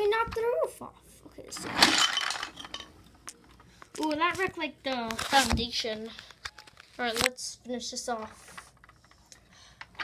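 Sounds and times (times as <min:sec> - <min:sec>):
toy pieces clattering: 0:01.6 - 0:02.9.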